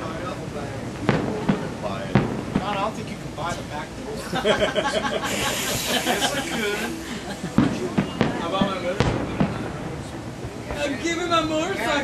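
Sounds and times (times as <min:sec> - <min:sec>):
fireworks bangs: 0:00.0 - 0:12.0.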